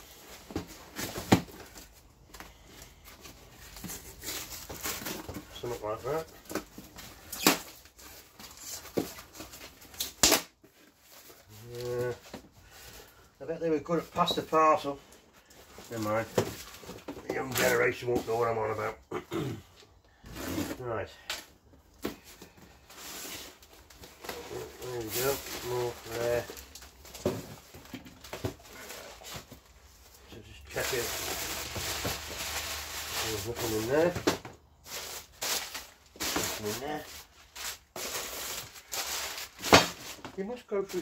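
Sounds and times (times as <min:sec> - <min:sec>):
cardboard and paper rustling: 0:00.0 - 0:13.2, 0:13.8 - 0:18.9, 0:20.2 - 0:41.0
crumpled paper rustling: 0:22.1 - 0:41.0.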